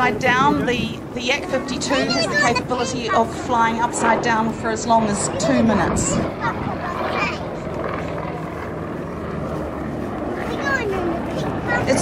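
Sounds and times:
commentator over public address: 0.0s - 7.3s, 10.4s - 12.0s
propeller plane engine droning: 0.0s - 12.0s.

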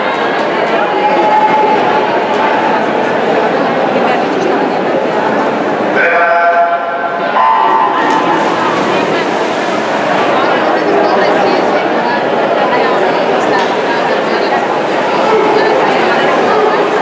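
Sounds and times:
crowd cheering and shouting: 0.0s - 3.4s, 6.0s - 12.3s, 13.3s - 17.0s.

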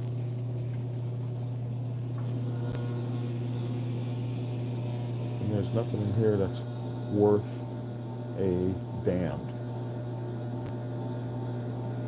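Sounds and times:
vending machine electrical hum: 0.0s - 12.0s.

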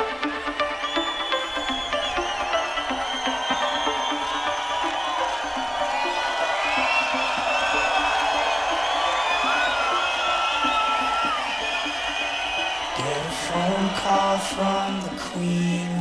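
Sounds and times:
crowd cheering and whooping: 0.0s - 16.0s
live festival music: 0.0s - 16.0s.

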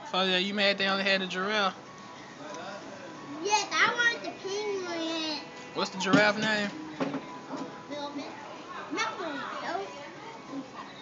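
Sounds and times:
room background noise: 0.0s - 11.0s.

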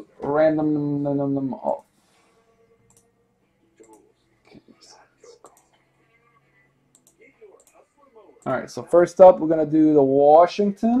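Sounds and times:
computer mouse clicks: 2.9s - 3.1s, 6.9s - 7.8s.

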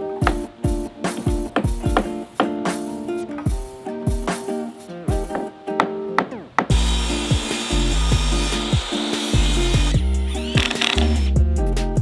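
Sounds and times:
background music with plucked notes: 0.0s - 12.0s
power tool cutting wood: 6.7s - 11.4s.

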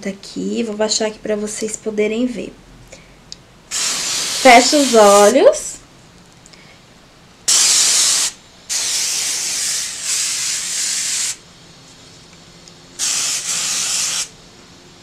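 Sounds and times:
aerosol can spraying: 3.7s - 5.4s, 7.5s - 11.4s, 13.0s - 14.4s.

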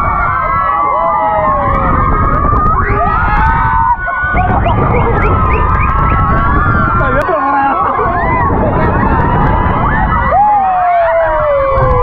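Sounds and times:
crowd screaming and shouting: 0.0s - 12.0s
wind rumble on microphone: 0.0s - 12.0s.

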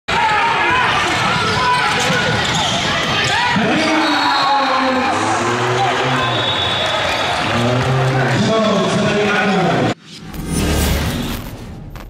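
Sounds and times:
players shouting: 0.1s - 9.9s.

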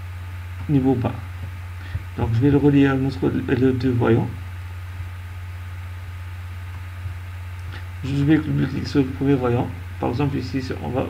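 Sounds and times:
low hum with faint hiss: 0.0s - 11.0s.

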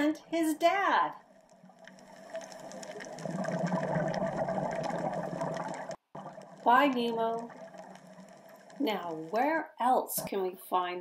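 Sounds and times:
underwater rushing water: 1.3s - 8.8s.

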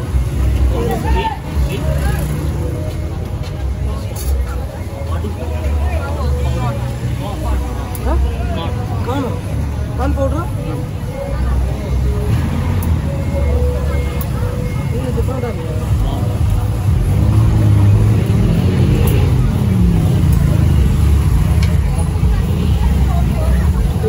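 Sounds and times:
low engine rumble: 0.0s - 24.0s.

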